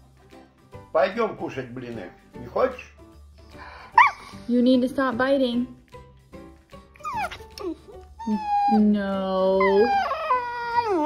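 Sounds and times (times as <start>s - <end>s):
puppy whining: 3.9s - 4.4s, 7.0s - 11.0s.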